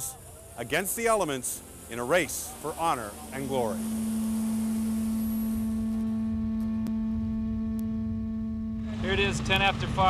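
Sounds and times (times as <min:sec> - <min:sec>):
conch shell trumpet blown: 0:02.9 - 0:09.7.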